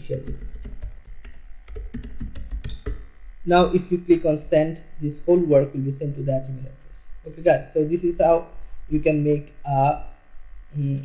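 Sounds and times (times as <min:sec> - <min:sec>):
computer keyboard typing: 0:00.0 - 0:03.1.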